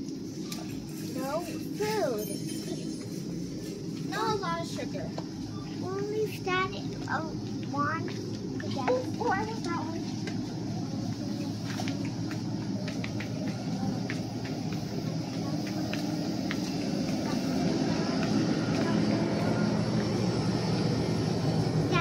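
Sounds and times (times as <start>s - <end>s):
store room hum and rumble: 0.0s - 22.0s.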